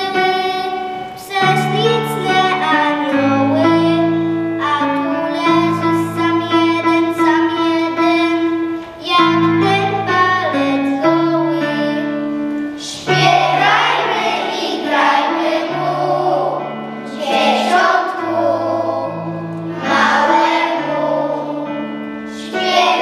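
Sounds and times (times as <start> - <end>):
children singing a carol: 0.0 - 23.0
instrumental accompaniment: 0.0 - 23.0.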